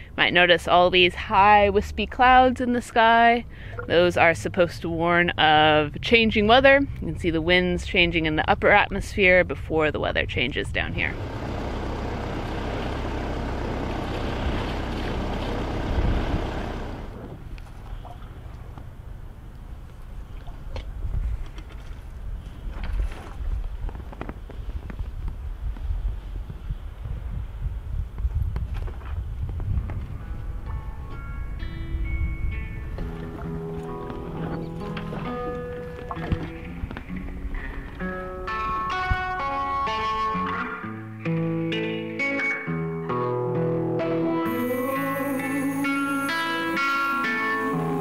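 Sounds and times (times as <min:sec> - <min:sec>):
wind rumbling on microphone: 0:00.0 - 0:13.1, 0:13.8 - 0:39.4
low hum: 0:11.0 - 0:20.7, 0:44.4 - 0:48.0
rush of wind and water: 0:17.4 - 0:30.0
background music: 0:30.5 - 0:48.0.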